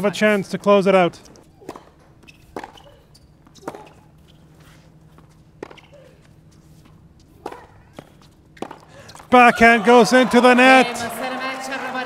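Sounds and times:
faint stadium hum: 0:00.0 - 0:12.0
tennis ball hits: 0:01.3 - 0:04.2, 0:05.2 - 0:09.5.

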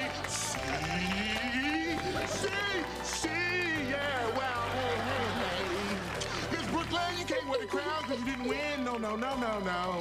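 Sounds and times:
backing music: 0:00.0 - 0:10.0.

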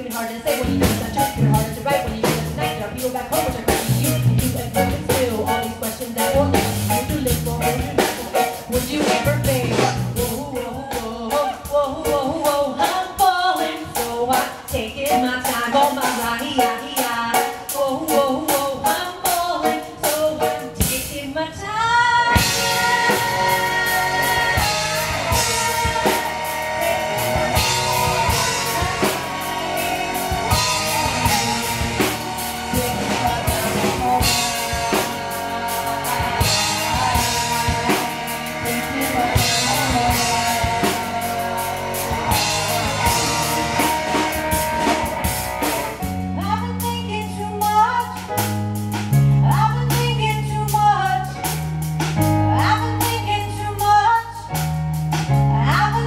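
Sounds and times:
guitars: 0:00.0 - 0:13.6, 0:21.6 - 0:56.0
woman singing: 0:00.0 - 0:48.4, 0:49.4 - 0:51.6, 0:52.2 - 0:54.6, 0:55.4 - 0:56.0
drum kit: 0:00.0 - 0:56.0
keyboards: 0:00.0 - 0:56.0.

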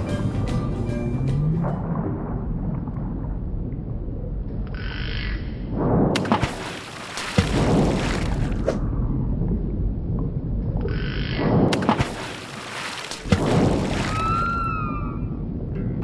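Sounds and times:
low rumble: 0:00.0 - 0:06.2, 0:07.6 - 0:11.8, 0:13.3 - 0:16.0
water splashing and sloshing: 0:00.0 - 0:16.0.

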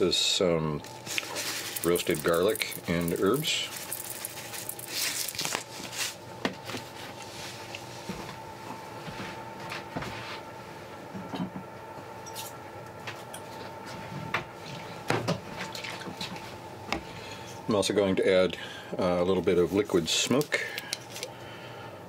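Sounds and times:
steady background hum: 0:00.0 - 0:22.0
shaker jar rattling: 0:00.9 - 0:06.0.

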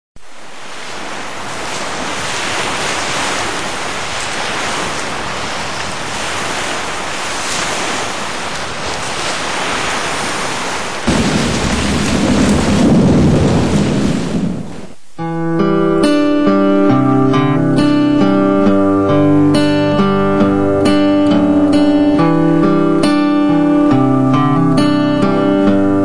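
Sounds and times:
steady rushing noise: 0:00.2 - 0:15.2
deep rumble: 0:11.1 - 0:15.0.

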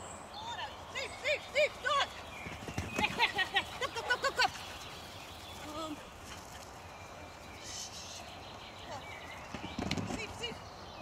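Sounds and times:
birds chirping: 0:00.0 - 0:11.0
patter of knocks: 0:09.5 - 0:10.5.

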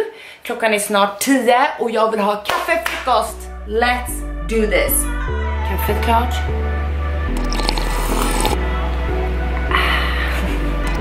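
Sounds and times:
background music with bass line: 0:03.0 - 0:11.0
sipping iced coffee: 0:07.3 - 0:08.6.

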